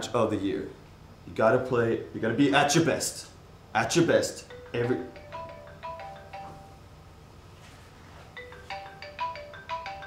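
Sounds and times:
phone ringtone chiming: 0:04.4 - 0:06.8, 0:08.4 - 0:10.0.

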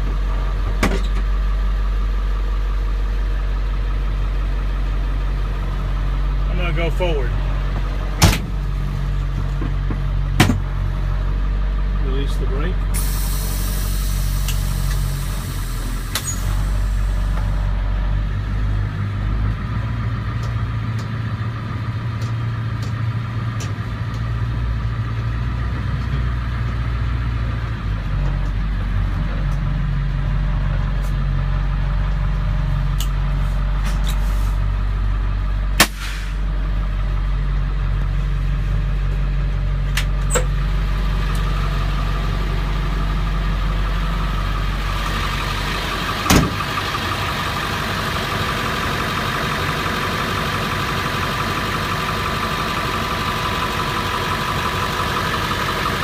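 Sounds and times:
truck engine humming: 0:00.0 - 0:56.0.

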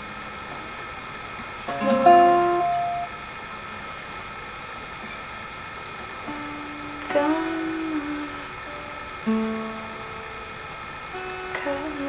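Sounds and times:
background hiss: 0:00.0 - 0:12.0.

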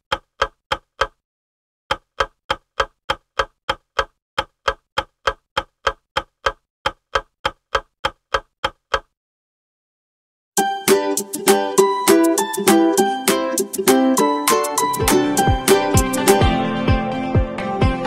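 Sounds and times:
clock ticking: 0:00.0 - 0:01.2, 0:01.9 - 0:09.2, 0:10.6 - 0:16.5.

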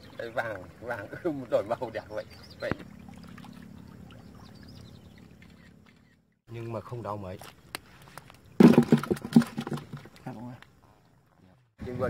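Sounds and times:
fish slapping and splashing: 0:07.9 - 0:10.3.

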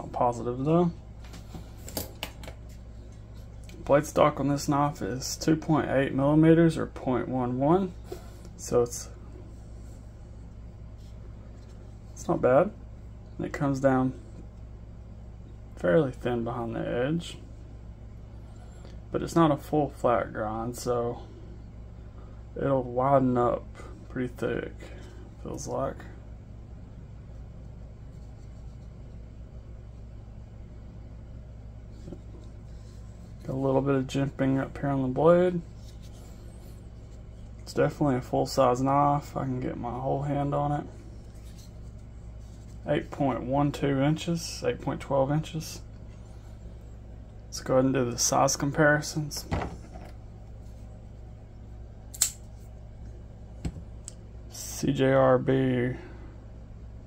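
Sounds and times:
low room hum: 0:00.0 - 0:57.0
folding knife click: 0:52.1 - 0:52.4.

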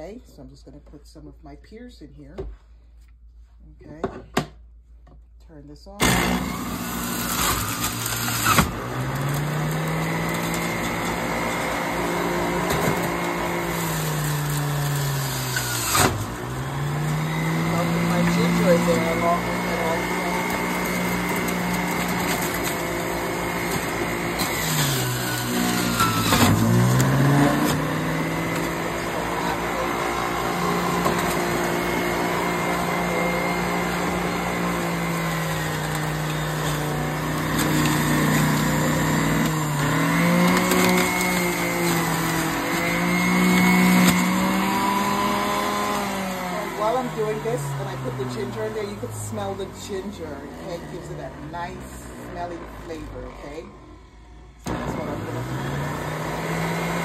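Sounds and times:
juicer motor whirring: 0:06.0 - 0:57.0.

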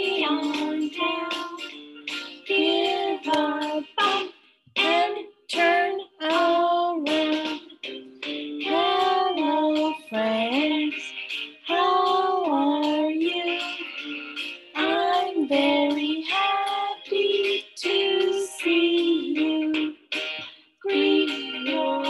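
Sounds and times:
woman singing: 0:00.0 - 0:01.6, 0:02.5 - 0:07.7, 0:08.6 - 0:11.1, 0:11.7 - 0:13.8, 0:14.8 - 0:20.0, 0:20.8 - 0:22.0
instrumental backing: 0:00.0 - 0:22.0.

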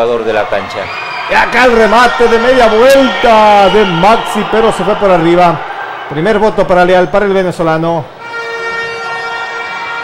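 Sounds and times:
steady horn-like tone: 0:08.1 - 0:10.0.

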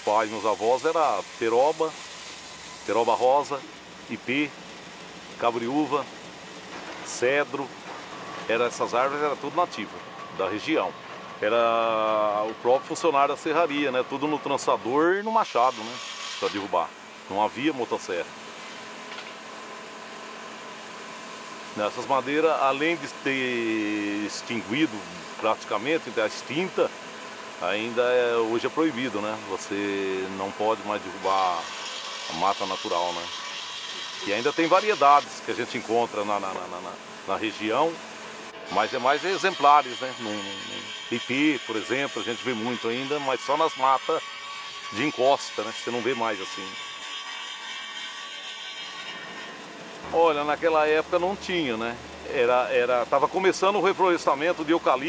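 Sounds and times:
circular saw whirring: 0:00.0 - 0:55.0
sawmill machinery hiss: 0:00.0 - 0:55.0.

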